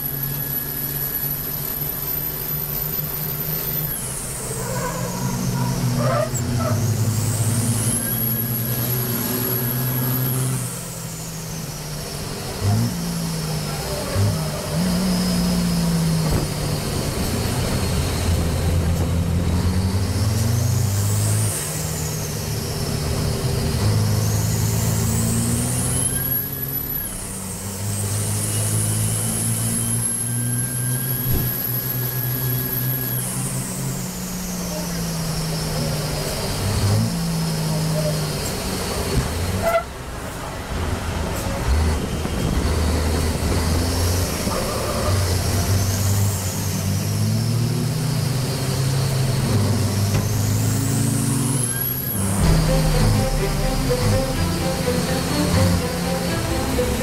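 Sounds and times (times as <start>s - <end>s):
diesel truck engine revving: 0.0s - 57.0s
turbo whistle: 0.1s - 11.7s, 25.2s - 27.3s.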